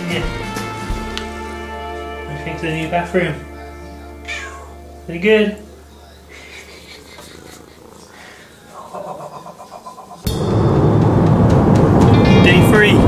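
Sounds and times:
music: 0:00.0 - 0:06.5, 0:10.3 - 0:13.0.

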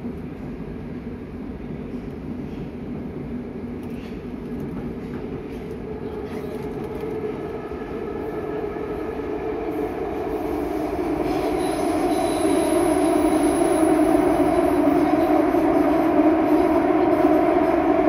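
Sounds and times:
train rumbling through tunnel: 0:00.0 - 0:18.0.

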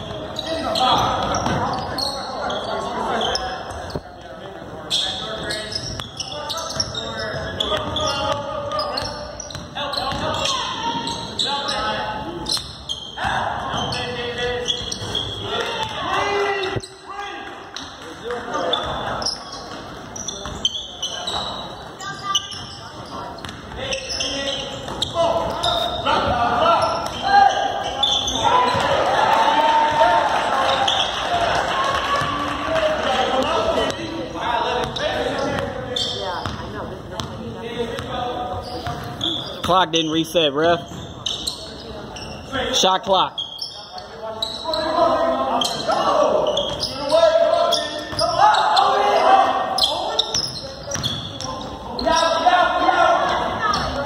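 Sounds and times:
basketball dribbling on court: 0:09.4 - 0:10.3, 0:36.4 - 0:36.6.

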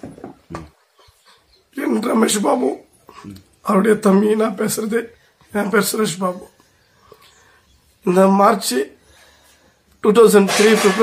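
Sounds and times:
man speaking: 0:01.7 - 0:06.5, 0:08.0 - 0:09.0, 0:10.0 - 0:11.0.

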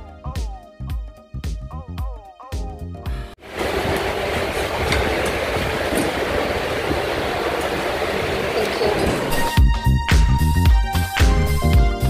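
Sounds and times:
loud rumbling noise: 0:03.4 - 0:09.5.

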